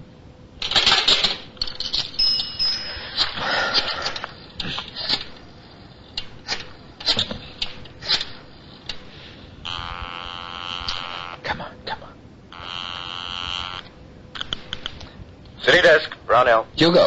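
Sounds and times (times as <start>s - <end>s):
buzzing telephone ring: 0.7s - 4.2s, 9.6s - 11.4s, 12.5s - 14.0s
sharp clicks: 14.4s - 15.1s.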